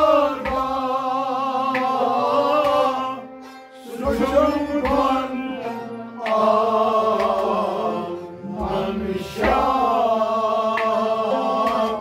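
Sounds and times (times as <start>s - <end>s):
harmonium held notes: 0.0s - 12.0s
men singing in chant-like style: 0.0s - 12.0s.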